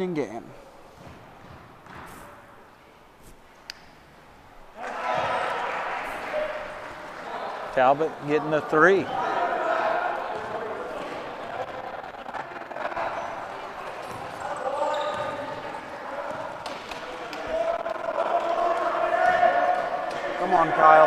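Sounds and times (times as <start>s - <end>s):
basketball bouncing on court: 1.0s - 2.2s, 13.8s - 17.3s
indistinct echoing voices: 4.6s - 21.0s.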